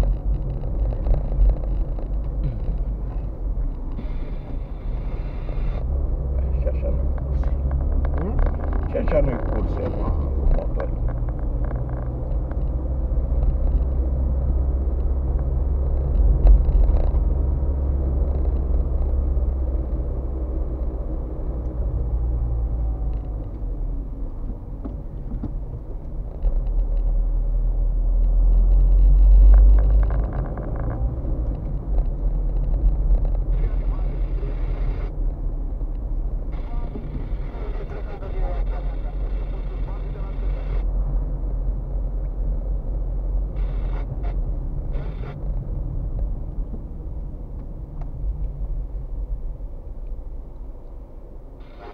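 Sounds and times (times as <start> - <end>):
car engine low rumble: 0.0 - 51.9
road noise inside car: 0.0 - 51.9.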